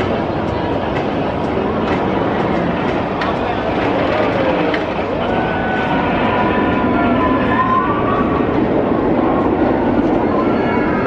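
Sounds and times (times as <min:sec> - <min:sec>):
roller coaster running on track: 0:00.0 - 0:11.0.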